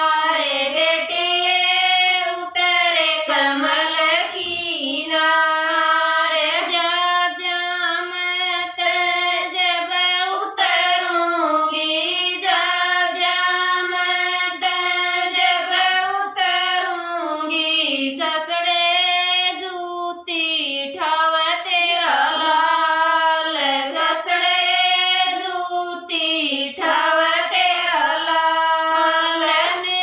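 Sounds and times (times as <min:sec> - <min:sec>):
women singing folk song together: 0:00.0 - 0:30.0.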